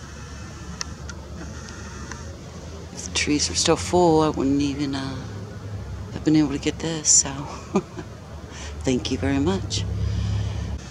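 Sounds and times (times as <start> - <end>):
low outdoor rumble: 0.0 - 10.9.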